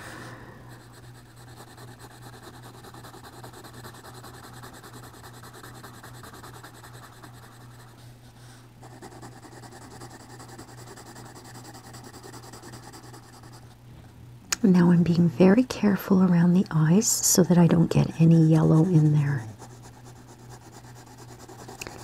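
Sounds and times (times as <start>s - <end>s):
steady low hum: 0.0s - 22.0s
pencil scratching on paper: 0.7s - 8.1s, 8.8s - 13.7s, 17.2s - 22.0s.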